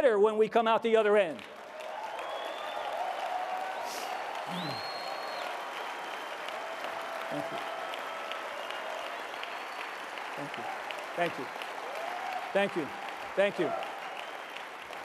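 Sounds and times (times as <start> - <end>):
audience clapping: 1.1 - 15.0
whistles: 2.1 - 3.0, 3.7 - 5.6, 7.5 - 10.2.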